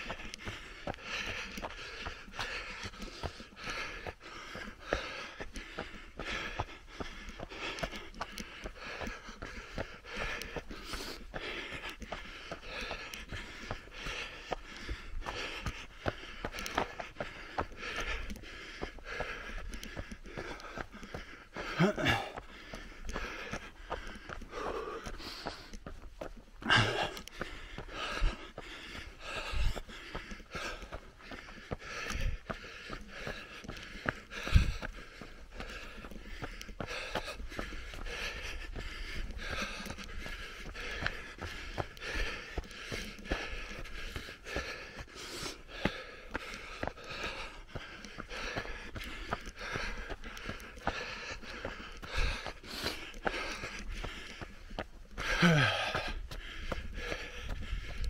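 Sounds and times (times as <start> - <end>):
runner breathing: 0.0 - 58.0
running footsteps on dirt: 0.0 - 58.0.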